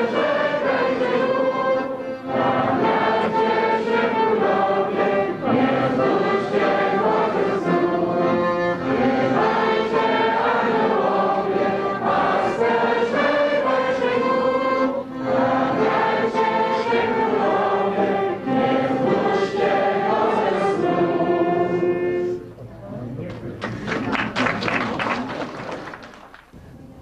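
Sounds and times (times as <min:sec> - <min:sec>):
group singing a carol: 0:00.0 - 0:22.5.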